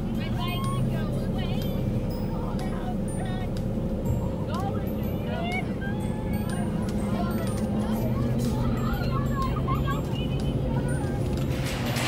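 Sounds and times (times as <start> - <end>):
car idling hum: 0.0 - 12.0
indistinct voices: 0.0 - 12.0.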